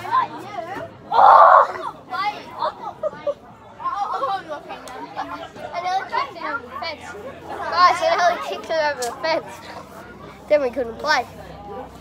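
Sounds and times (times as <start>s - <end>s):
children talking and calling out: 0.0s - 12.0s.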